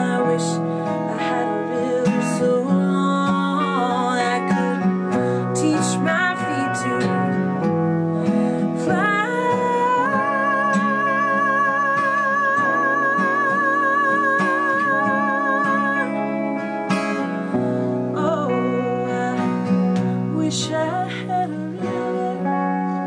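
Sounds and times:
acoustic guitar: 0:00.0 - 0:23.0
electric guitar: 0:00.0 - 0:23.0
woman singing: 0:00.0 - 0:23.0.

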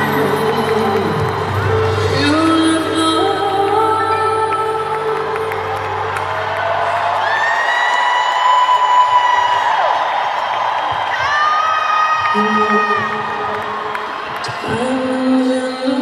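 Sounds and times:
crowd cheering and whooping: 0:00.0 - 0:03.3, 0:05.0 - 0:16.0
live band music with deep bass: 0:00.0 - 0:07.1.

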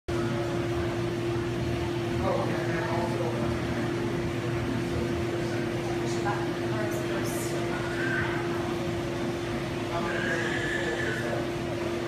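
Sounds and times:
faint background voices: 0:00.1 - 0:12.0
steady mechanical hum: 0:00.1 - 0:12.0.

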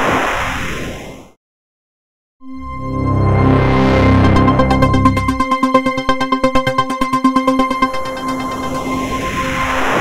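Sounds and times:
held synth notes: 0:02.4 - 0:10.0
whoosh sweeping in pitch: 0:02.4 - 0:10.0.

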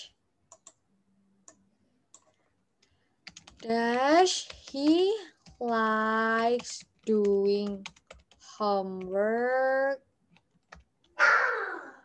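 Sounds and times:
keyboard typing: 0:00.5 - 0:00.8, 0:01.4 - 0:11.2.

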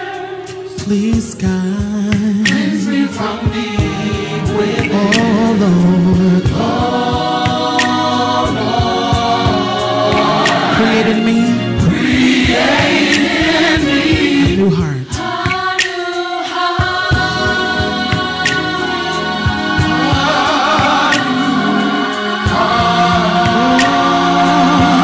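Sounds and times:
male lead vocalist singing: 0:00.0 - 0:15.4, 0:19.8 - 0:25.0
backing singers in harmony: 0:00.0 - 0:25.0
steady percussive beat: 0:00.0 - 0:25.0.

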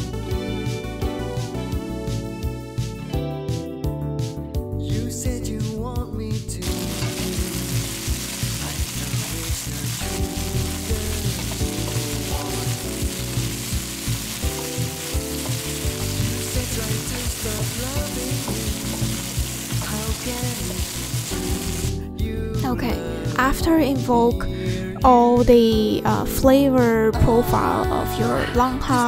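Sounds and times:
background music: 0:00.0 - 0:29.0
vegetables sizzling in hot oil: 0:06.6 - 0:22.0
wooden spatula stirring in wok: 0:06.7 - 0:21.6.

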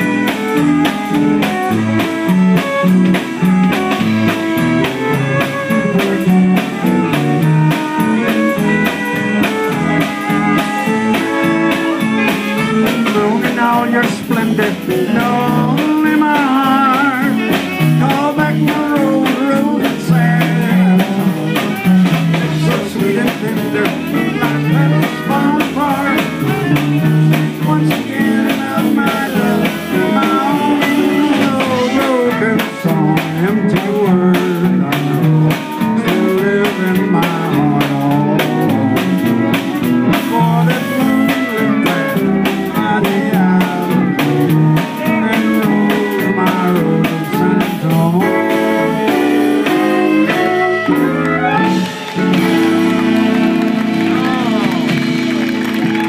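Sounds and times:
drum kit beat: 0:00.0 - 0:56.0
fiddles playing melody: 0:00.0 - 0:56.0
guitar: 0:00.0 - 0:56.0
keyboard: 0:00.0 - 0:56.0.

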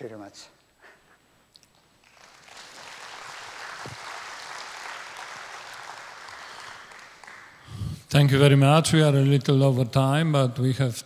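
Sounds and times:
audience applauding: 0:02.0 - 0:07.8.

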